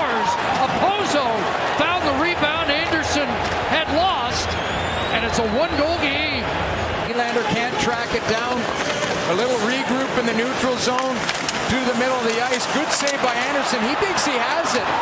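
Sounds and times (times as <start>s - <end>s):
crowd shouting: 0.0s - 10.5s, 11.6s - 15.0s
sticks and puck knocking: 8.0s - 9.4s, 10.7s - 13.6s.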